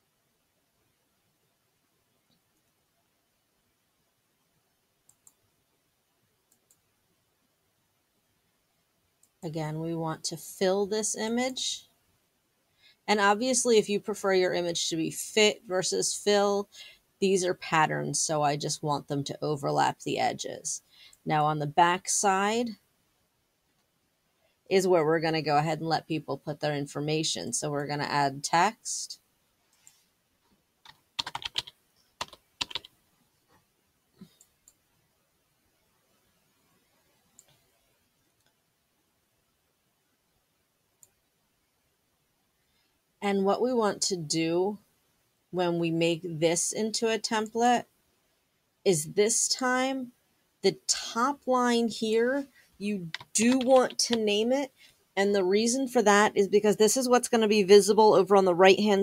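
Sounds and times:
faint computer mouse clicks: 5.1 - 5.4, 6.5 - 6.8
keyboard typing: 30.8 - 33.0, 53.0 - 54.3.

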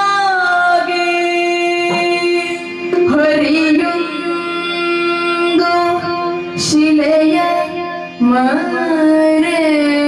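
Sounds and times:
woman singing in a high voice: 0.0 - 10.0
electronic drone: 0.4 - 10.0.

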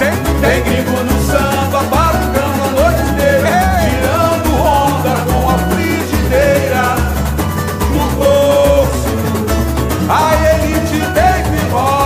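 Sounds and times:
band with pulsing bass beat: 0.0 - 12.0
person singing samba melody: 0.0 - 12.0.

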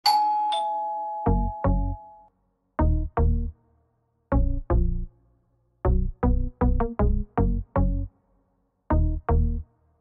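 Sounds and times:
two-note ding-dong chime: 0.0 - 2.2.

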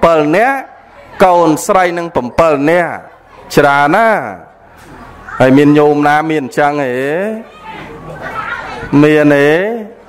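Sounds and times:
man preaching into a microphone: 0.0 - 4.6, 5.4 - 7.4, 8.9 - 10.0
faint background voices: 6.8 - 10.0.

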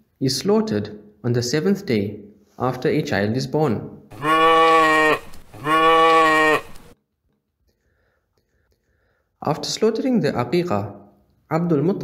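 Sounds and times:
goat bleating: 4.1 - 6.9.

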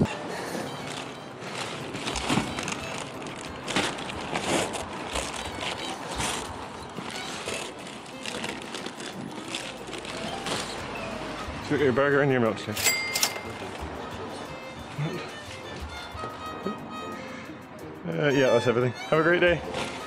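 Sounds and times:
backpack nylon and foil rustling: 0.1 - 11.8, 19.6 - 20.0.

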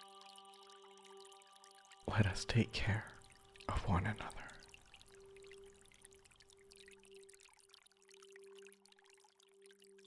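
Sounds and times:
trickling water: 0.0 - 10.0.

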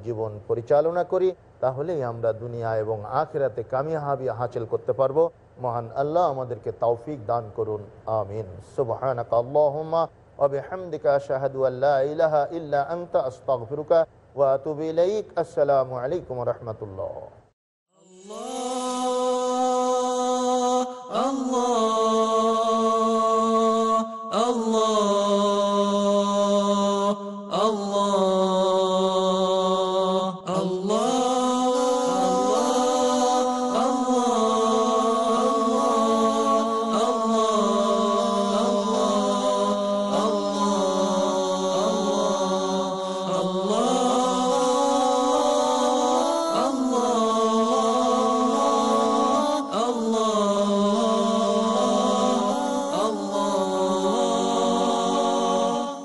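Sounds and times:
slow vocal chant: 17.9 - 56.0.

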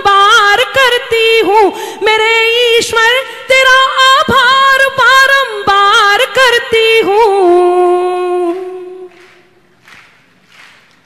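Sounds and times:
woman singing: 0.0 - 9.6.

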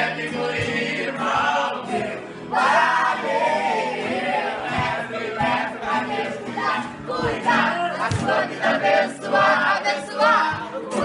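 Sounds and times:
group singing in unison: 0.0 - 11.0
strummed acoustic guitar: 0.0 - 11.0.

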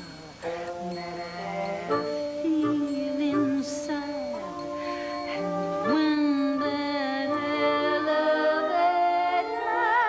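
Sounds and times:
band holding sustained chord: 0.0 - 10.0.

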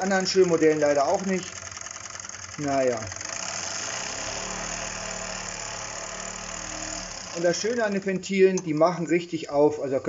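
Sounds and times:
toy steam engine chuffing: 0.0 - 8.4.

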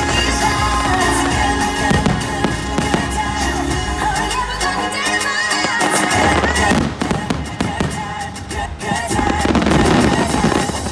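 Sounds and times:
loud music with heavy bass beat: 0.0 - 10.9.

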